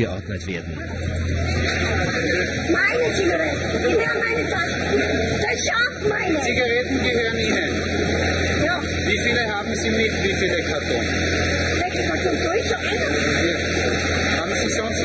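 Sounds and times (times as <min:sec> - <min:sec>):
people talking over one another: 0:00.0 - 0:15.0.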